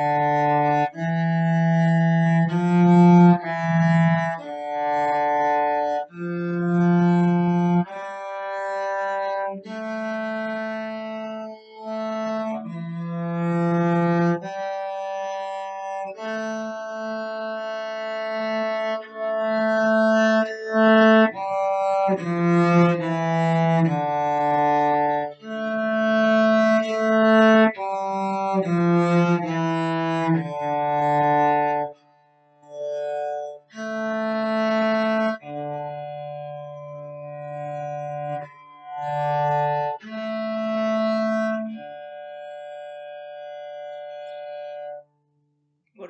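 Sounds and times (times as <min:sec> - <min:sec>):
cello bowed sustained notes: 0:00.0 - 0:32.1, 0:32.7 - 0:45.0.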